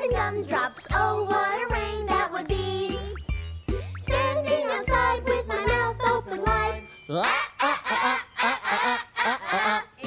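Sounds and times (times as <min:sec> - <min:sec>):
children and adults singing: 0:00.0 - 0:03.1, 0:04.1 - 0:06.8.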